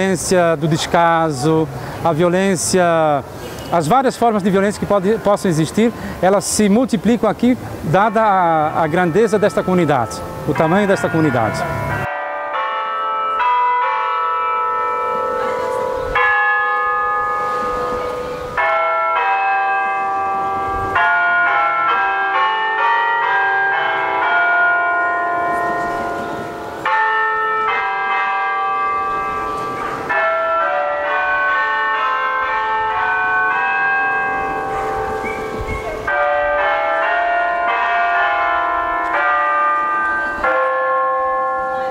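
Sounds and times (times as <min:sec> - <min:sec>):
bells ringing a melody: 0:00.0 - 0:41.9.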